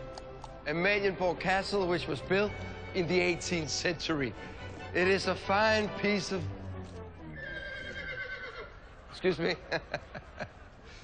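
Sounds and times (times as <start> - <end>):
horse whinnying: 7.2 - 8.8.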